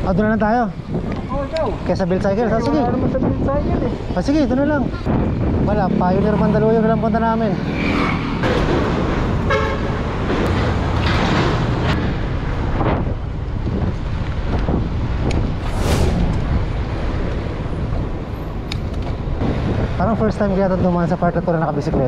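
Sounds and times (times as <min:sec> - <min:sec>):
heavy wind noise on microphone: 0:00.0 - 0:06.8, 0:08.2 - 0:22.0
car horn toot: 0:09.5 - 0:09.9.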